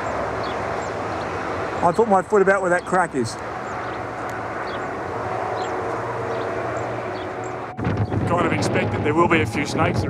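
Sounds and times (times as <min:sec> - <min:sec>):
outdoor rushing noise: 0:00.0 - 0:10.0
low hum: 0:03.4 - 0:10.0.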